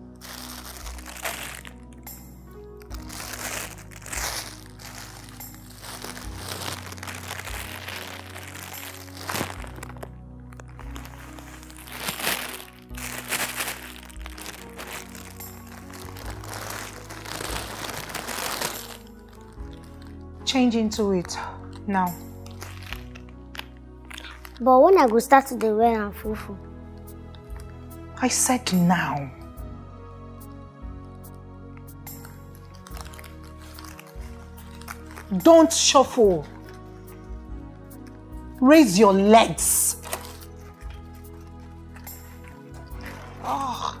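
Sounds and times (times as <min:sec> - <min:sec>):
background film music: 0:00.0 - 0:44.0
plastic bag crinkling: 0:00.2 - 0:02.2, 0:02.8 - 0:20.2, 0:22.1 - 0:25.4, 0:32.2 - 0:37.3, 0:39.5 - 0:44.0.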